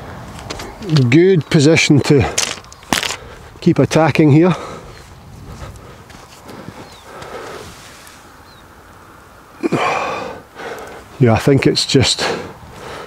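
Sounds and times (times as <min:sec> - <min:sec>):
breathy exhale close to microphone: 0:06.6 - 0:08.2, 0:09.7 - 0:11.1.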